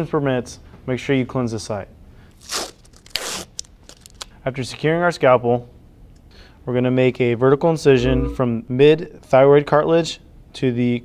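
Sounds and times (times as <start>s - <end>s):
packaging tearing: 2.4s - 4.3s.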